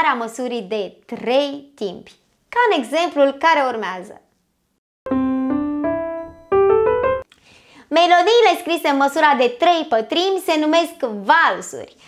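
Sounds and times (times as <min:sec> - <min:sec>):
piano-like keyboard notes: 0:05.1 - 0:07.3.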